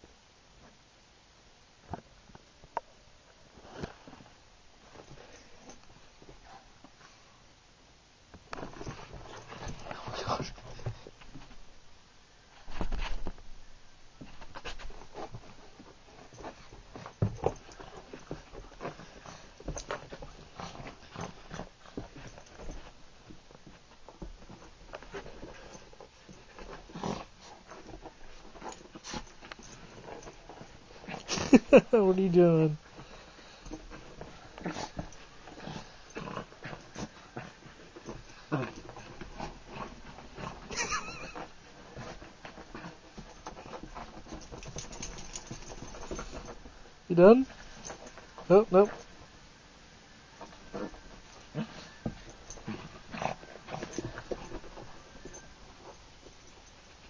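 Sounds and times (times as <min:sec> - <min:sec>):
dog scrabbling on carpet: 0:08.4 - 0:11.7, 0:12.5 - 0:13.5, 0:14.2 - 0:31.6, 0:32.8 - 0:49.3, 0:50.4 - 0:57.0.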